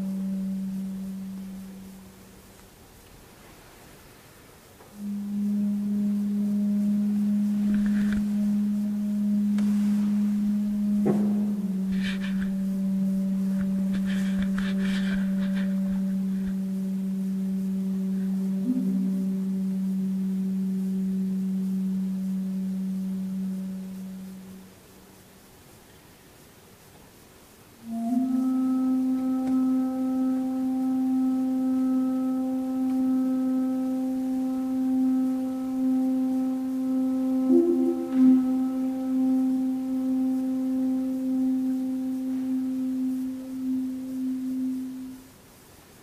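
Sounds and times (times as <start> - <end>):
bamboo flute low note: 0.0 - 2.4, 4.9 - 24.8, 27.8 - 45.3
breathy air noise: 0.0 - 46.0.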